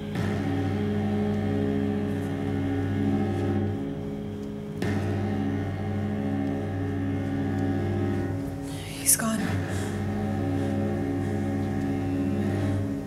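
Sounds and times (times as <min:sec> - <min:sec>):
low droning horror score: 0:00.0 - 0:13.0.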